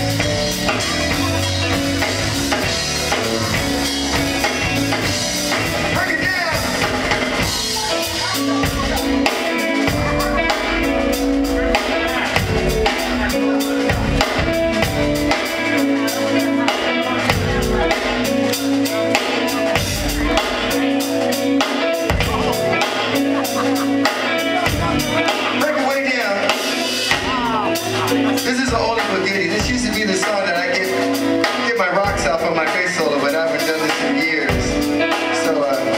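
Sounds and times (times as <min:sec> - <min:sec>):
funk band playing: 0:00.0 - 0:35.9.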